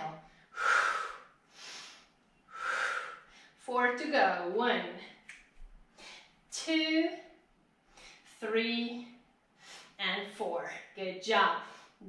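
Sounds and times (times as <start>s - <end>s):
woman breathing hard: 0.4s - 3.6s.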